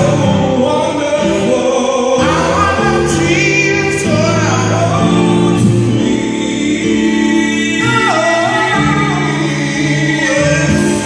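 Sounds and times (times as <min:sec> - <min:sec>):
electronic keyboard chords: 0:00.0 - 0:11.0
men singing gospel song: 0:00.0 - 0:11.0.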